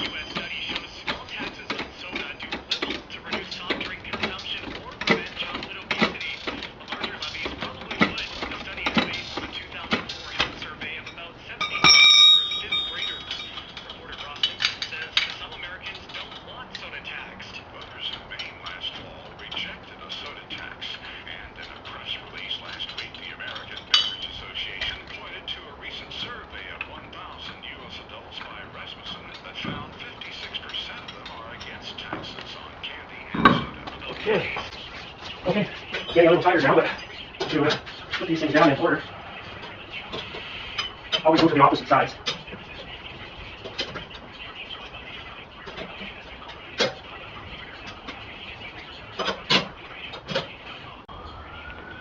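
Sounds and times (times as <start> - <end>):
lug nuts and wrench clinking: 5.0 - 16.4
ringing metal clang: 11.6 - 13.8.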